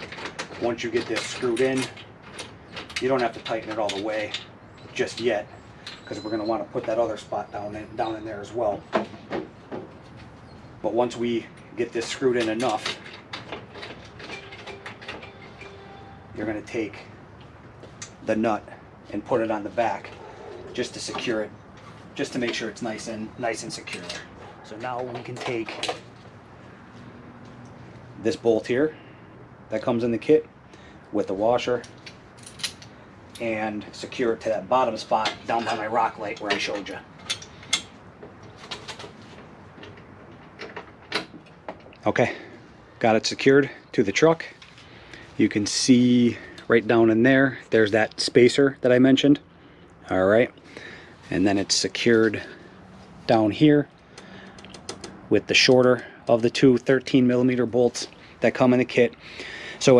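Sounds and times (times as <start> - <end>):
metallic clicks of bolt screwing: 35.2 - 39.1, 54.2 - 56.0.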